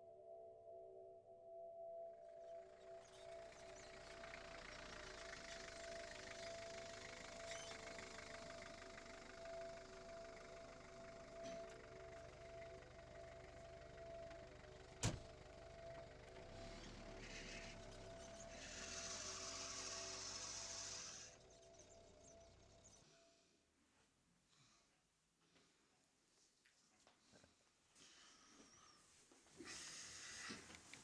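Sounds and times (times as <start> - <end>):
drone of held tones: 0.0 - 23.6
faint hiss: 16.7 - 21.5.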